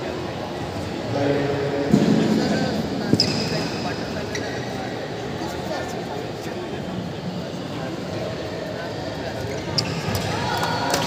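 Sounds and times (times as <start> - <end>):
echoing chatter in hall: 0.0 - 11.0
shoe squeaking on court floor: 3.1 - 5.0, 9.4 - 10.4.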